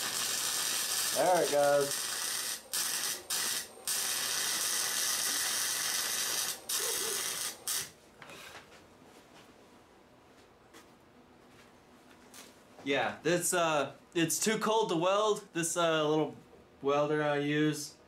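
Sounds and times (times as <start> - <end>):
welder arc crackling: 0.0 - 8.0.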